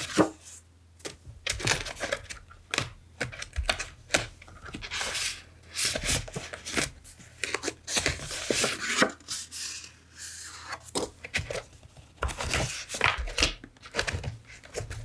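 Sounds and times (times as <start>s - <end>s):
paper pages rustling: 3.4s - 15.0s.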